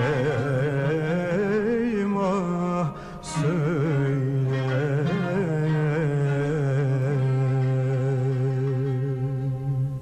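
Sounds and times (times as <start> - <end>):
man singing a long low note: 0.0 - 10.0.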